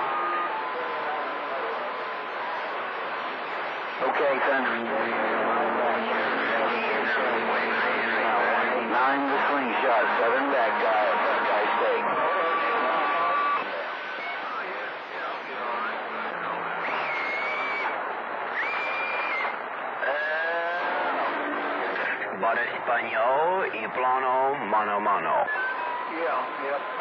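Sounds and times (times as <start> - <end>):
radio static: 0.1 - 18.8, 19.5 - 27.0
garbled voices over radio: 4.0 - 16.8, 21.9 - 26.8.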